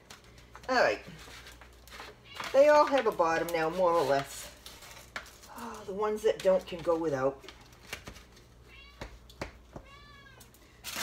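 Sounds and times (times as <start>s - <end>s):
cat meowing: 8.7s - 9.1s, 9.8s - 10.5s.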